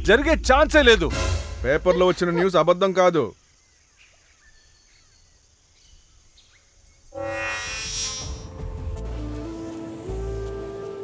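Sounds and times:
bird chirps: 0:03.3 - 0:08.5
bright hissing whoosh: 0:07.2 - 0:08.6.

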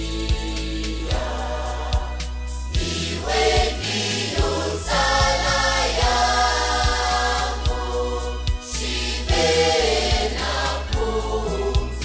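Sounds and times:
choir singing: 0:00.0 - 0:12.0
steady beat with bass line: 0:00.0 - 0:12.0.

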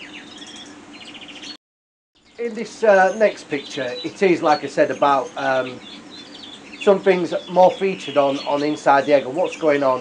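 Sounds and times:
canaries trilling: 0:00.0 - 0:01.6, 0:02.2 - 0:10.0.

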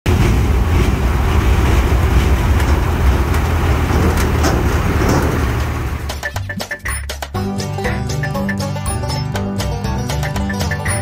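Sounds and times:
lorry diesel engine running: 0:00.0 - 0:11.0.

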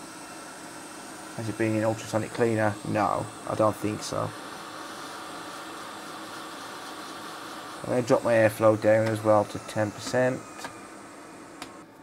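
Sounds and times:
hot air blower hissing: 0:00.0 - 0:12.0
person speaking: 0:01.4 - 0:04.4, 0:07.8 - 0:10.7.

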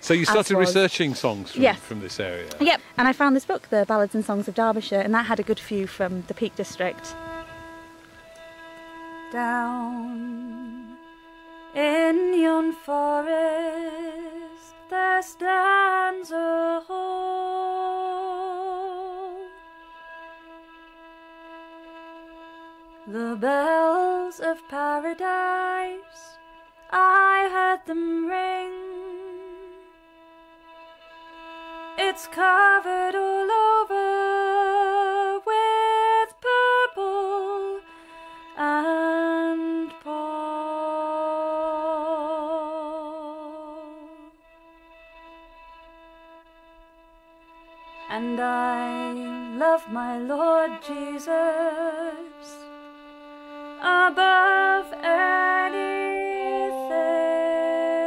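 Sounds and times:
woman singing with vibrato: 0:09.3 - 0:11.0, 0:11.8 - 0:19.5, 0:23.1 - 0:26.4, 0:27.0 - 0:29.9, 0:32.0 - 0:37.9, 0:38.6 - 0:44.4, 0:48.1 - 0:52.7, 0:53.8 - 0:58.0
person singing a carol: 0:48.1 - 0:52.6, 0:53.8 - 0:58.0.

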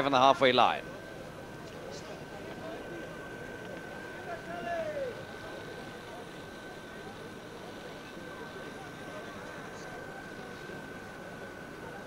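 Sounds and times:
broadcast soundtrack hiss: 0:00.0 - 0:12.0
constant high-pitched tone: 0:00.0 - 0:12.0.

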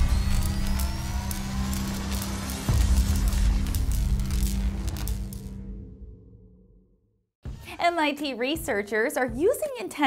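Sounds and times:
rising whine: 0:00.0 - 0:06.4.

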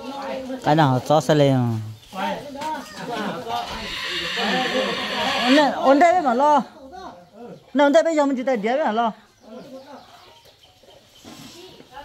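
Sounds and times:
chicken clucking: 0:02.8 - 0:06.0, 0:09.3 - 0:12.0.

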